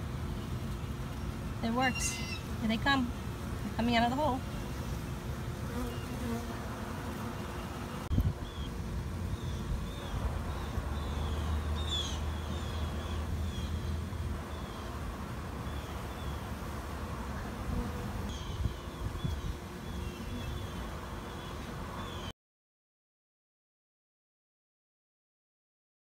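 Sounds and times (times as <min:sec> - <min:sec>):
bees buzzing: 0:00.1 - 0:22.3
small birds chirping: 0:07.2 - 0:15.0, 0:18.3 - 0:22.3.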